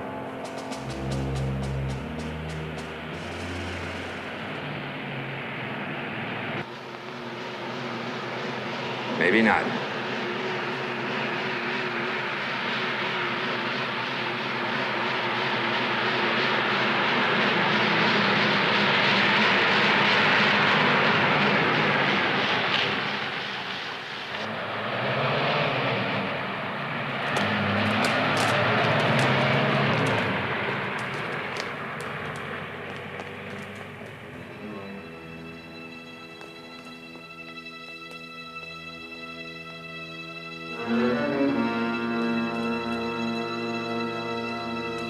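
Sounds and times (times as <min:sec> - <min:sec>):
engines running: 0:00.0 - 0:45.0
low pitched drone: 0:00.0 - 0:45.0.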